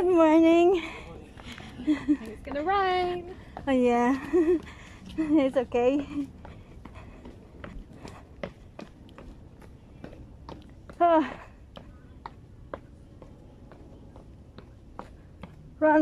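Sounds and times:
footsteps on stone steps: 0:00.0 - 0:16.0.

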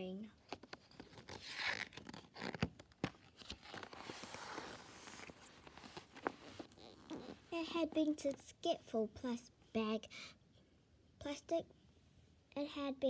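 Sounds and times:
book page turning: 0:00.4 - 0:07.5.

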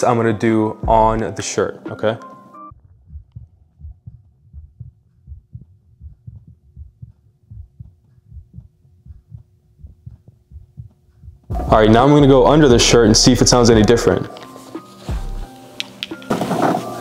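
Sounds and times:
heartbeat thumps: 0:00.8 - 0:01.2, 0:02.7 - 0:14.2, 0:15.1 - 0:15.5
faint steady hum: 0:02.7 - 0:14.2.

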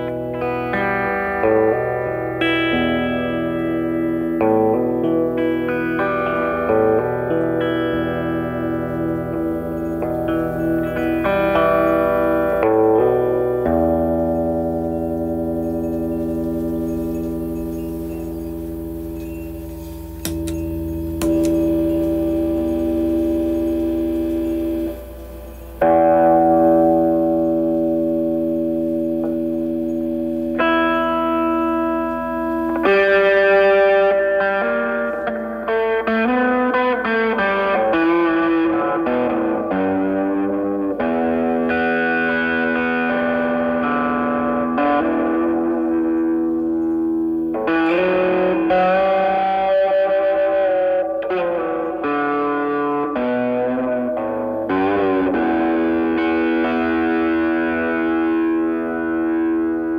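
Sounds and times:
electric guitar chords and notes: 0:00.0 - 0:59.9.

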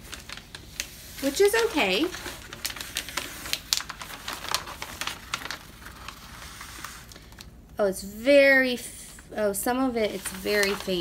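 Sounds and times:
paper crinkling and rustling: 0:00.0 - 0:07.6, 0:09.8 - 0:11.0
sharp paper crackles: 0:00.0 - 0:07.6, 0:10.0 - 0:11.0.

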